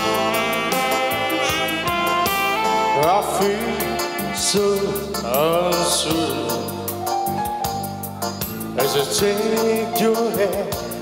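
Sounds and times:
live band backing: 0.0s - 11.0s
man singing: 2.8s - 7.0s, 8.7s - 11.0s.

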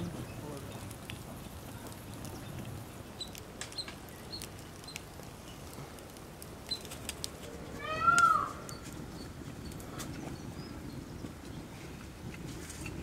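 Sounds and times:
crackle of fire: 0.0s - 13.0s.

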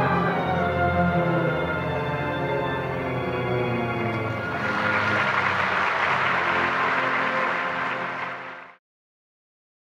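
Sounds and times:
orchestra playing: 0.0s - 8.8s
audience applauding: 4.2s - 8.8s.

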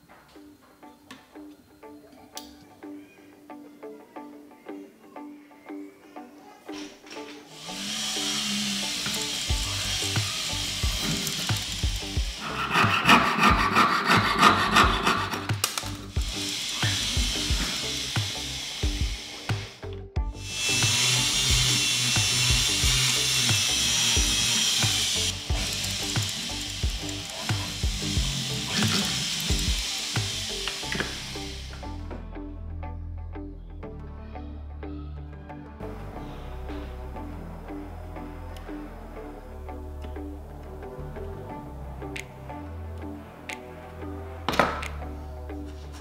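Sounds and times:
background music: 0.0s - 46.0s.

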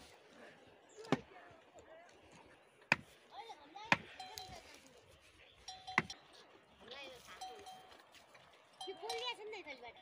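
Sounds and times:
livestock neck bell ringing: 4.1s - 4.8s, 5.6s - 6.4s, 7.3s - 8.1s, 8.7s - 10.0s.

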